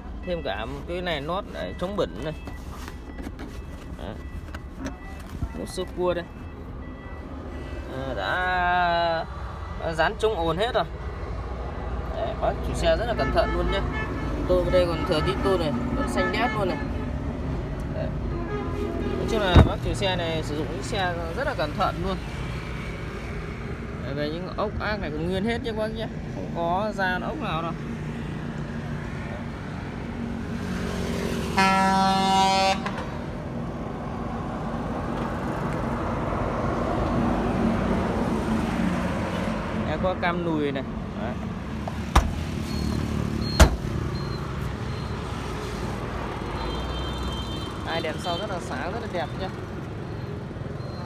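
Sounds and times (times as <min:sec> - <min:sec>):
vehicle rumble: 0:00.0 - 0:13.2.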